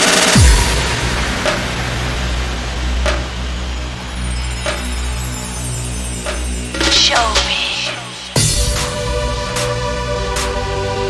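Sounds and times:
deep bass: 0:00.4 - 0:05.6.

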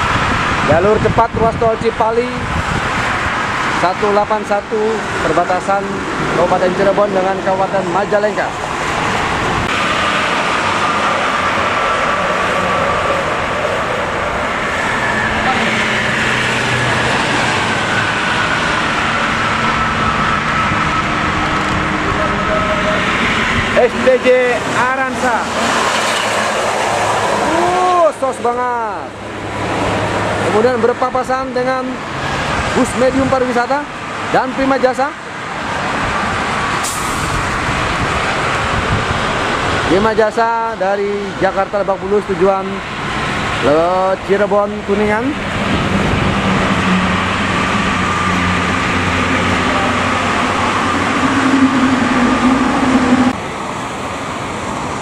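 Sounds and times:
cars and coach passing at speed: 0:00.0 - 0:55.0
brief high hiss: 0:36.8 - 0:37.4.

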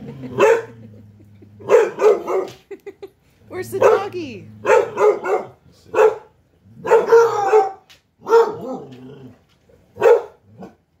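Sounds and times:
hound barking and baying: 0:00.2 - 0:00.9, 0:01.6 - 0:02.6, 0:03.7 - 0:09.0, 0:10.0 - 0:10.9.

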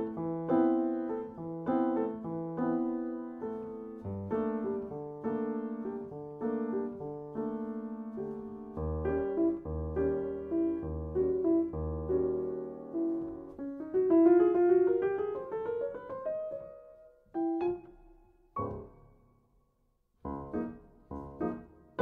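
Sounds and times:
solo piano chords: 0:00.0 - 0:22.0.

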